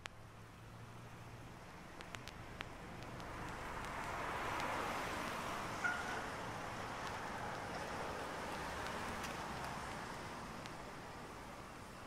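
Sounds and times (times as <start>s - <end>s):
faint city ambience: 0.0s - 12.0s.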